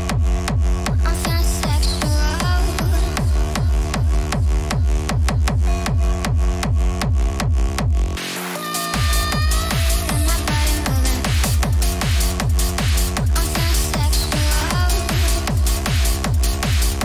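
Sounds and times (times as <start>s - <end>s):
techno kick drum: 0.0s - 17.0s.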